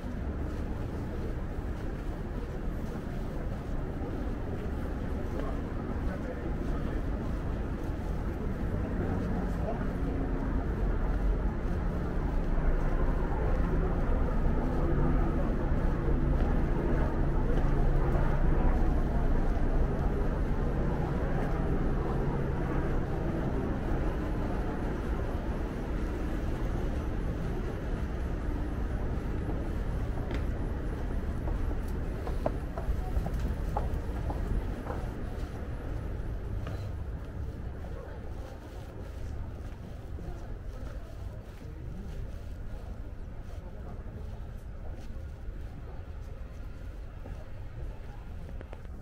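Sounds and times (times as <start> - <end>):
steady low hum: 0.0 - 49.0.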